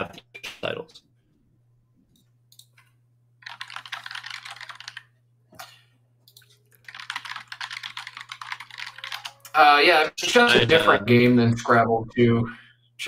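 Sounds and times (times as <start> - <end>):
rapid keyboard typing: 3.4 - 5.1, 6.3 - 9.5.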